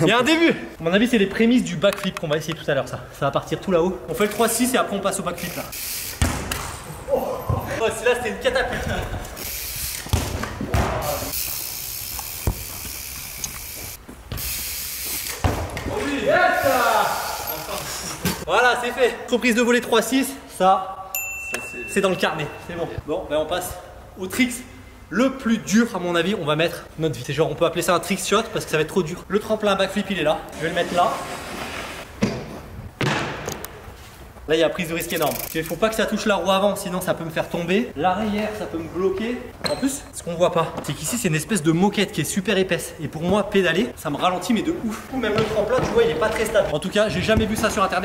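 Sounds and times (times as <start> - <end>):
bike tyres hissing on turf: 11.1 - 15.4.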